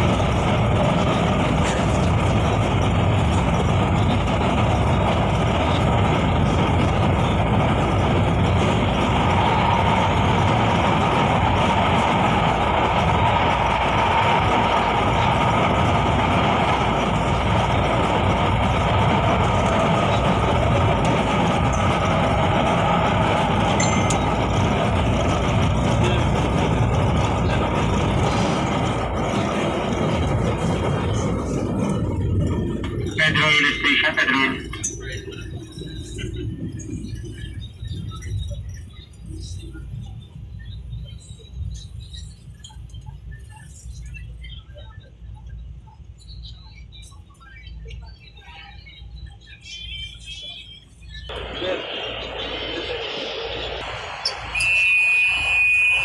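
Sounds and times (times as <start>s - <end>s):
train wheels and motors running: 0.0s - 56.0s.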